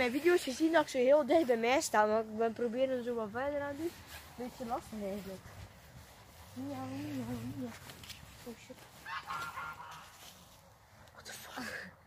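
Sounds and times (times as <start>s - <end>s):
geese honking: 9.0s - 10.2s.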